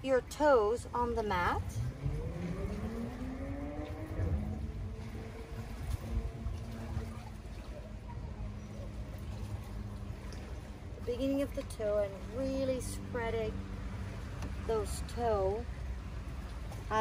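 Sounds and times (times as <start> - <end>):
motorboat engine: 0.0 - 17.0
low rumble: 0.8 - 17.0.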